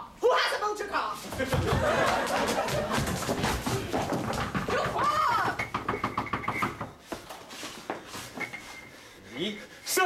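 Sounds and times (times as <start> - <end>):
hurried footsteps on floor: 1.2 - 9.2.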